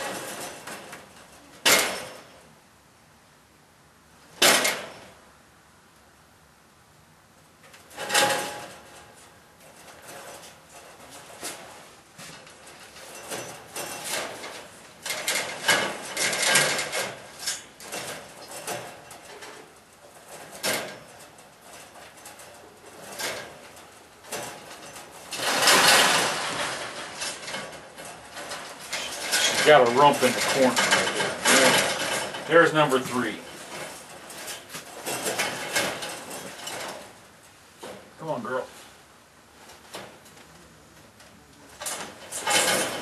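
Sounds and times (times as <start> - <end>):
rabbits scuffling on wire floor: 0.0 - 2.5, 7.6 - 43.0.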